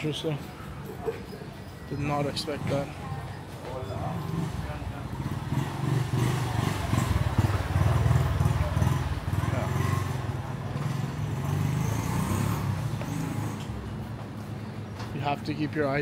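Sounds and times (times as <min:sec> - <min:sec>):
motorbike engine running: 0:04.3 - 0:13.5.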